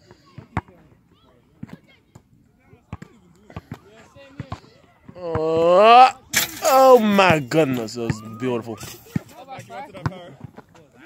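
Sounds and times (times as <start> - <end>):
faint voices: 0.0 - 11.0
basketballs bouncing on asphalt: 0.3 - 0.9, 1.5 - 5.8, 7.2 - 11.0.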